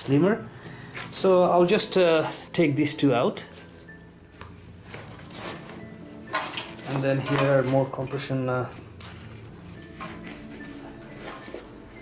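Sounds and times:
nylon bag handling noise: 4.7s - 8.0s, 9.0s - 12.0s.

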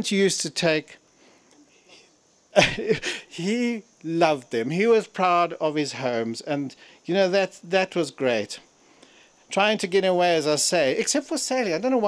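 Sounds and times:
man speaking: 0.0s - 1.0s, 2.6s - 8.7s, 9.5s - 12.0s
sharp breath: 8.8s - 9.5s.

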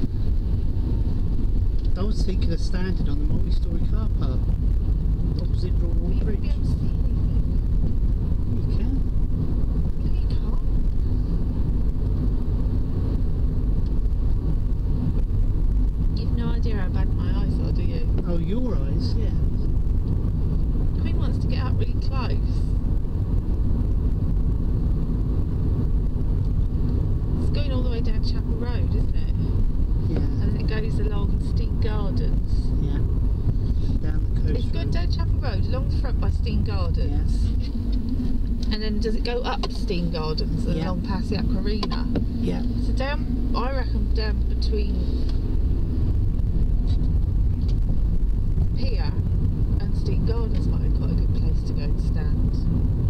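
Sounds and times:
car engine and road noise: 0.0s - 53.0s
quiet voices talking: 30.0s - 33.1s.

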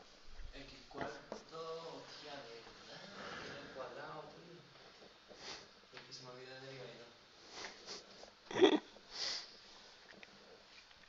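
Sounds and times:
person sniffing: 5.3s - 5.7s, 7.4s - 8.3s, 9.1s - 9.6s.

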